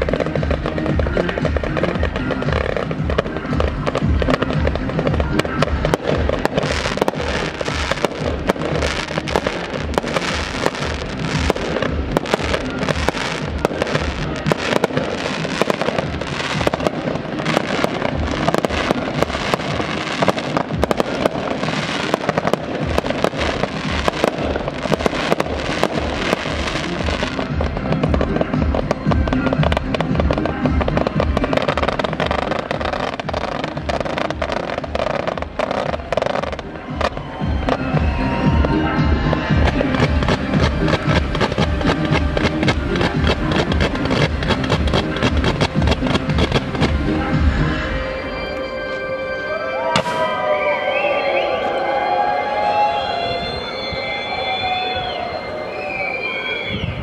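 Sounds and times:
fireworks banging and crackling: 0:00.0 - 0:48.2, 0:49.9 - 0:50.6
music with bass beat: 0:00.0 - 0:48.5.

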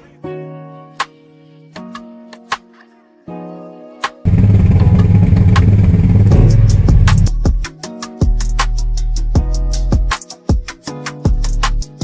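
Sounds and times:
truck engine running at low revs: 0:04.3 - 0:07.4.

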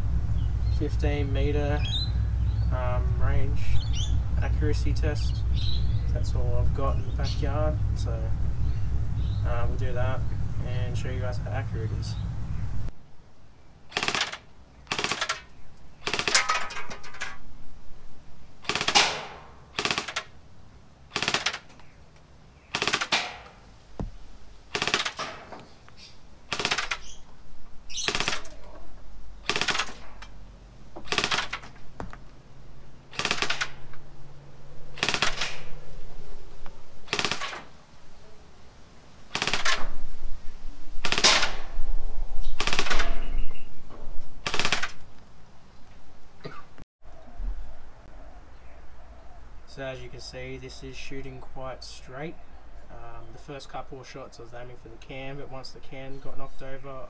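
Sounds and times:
gel blaster firing single shots: 0:13.9 - 0:16.5, 0:18.6 - 0:20.3, 0:21.1 - 0:21.7, 0:22.7 - 0:23.6, 0:24.7 - 0:25.4, 0:26.5 - 0:27.1, 0:28.0 - 0:28.5, 0:29.4 - 0:30.0, 0:31.0 - 0:31.7, 0:33.1 - 0:33.8, 0:35.0 - 0:35.8, 0:37.1 - 0:37.7, 0:39.3 - 0:39.9, 0:41.0 - 0:41.7, 0:42.6 - 0:43.2, 0:44.4 - 0:45.0.

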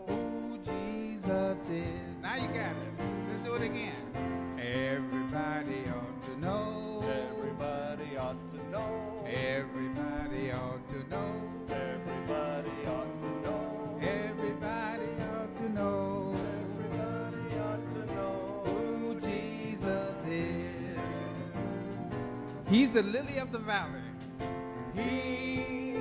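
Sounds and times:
voices singing gospel chorus: 0:00.0 - 0:22.9, 0:24.8 - 0:26.0
steady strummed beat: 0:00.0 - 0:26.0
plucked string accompaniment: 0:01.2 - 0:26.0.

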